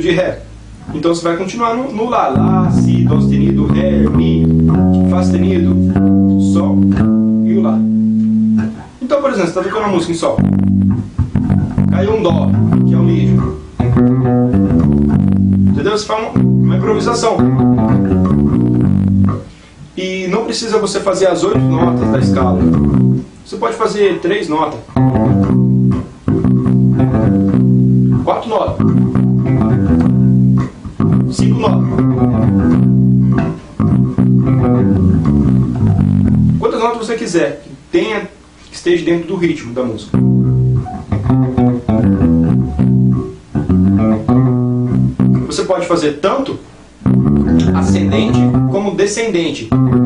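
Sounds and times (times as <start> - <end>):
electric bass guitar notes: 0.0 - 1.1, 2.3 - 9.0, 9.7 - 19.6, 21.4 - 23.4, 24.8 - 36.7, 40.0 - 45.7, 46.9 - 49.0, 49.6 - 50.0.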